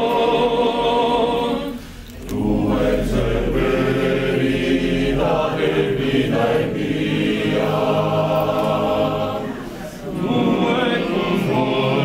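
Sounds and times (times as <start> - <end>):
male choir singing a cappella: 0.0 - 12.0.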